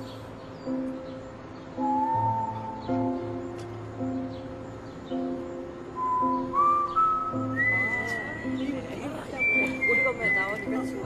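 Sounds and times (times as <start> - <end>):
soft guitar music: 0.0 - 11.0
person whistling melody: 1.8 - 3.2, 6.0 - 8.6, 9.4 - 11.0.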